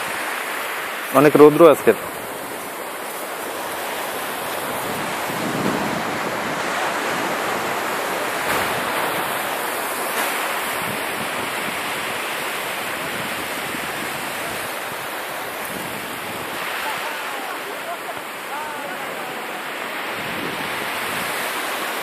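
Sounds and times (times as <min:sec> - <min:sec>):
waves breaking on beach: 0:00.0 - 0:22.0
wind buffeting microphone: 0:01.8 - 0:21.9.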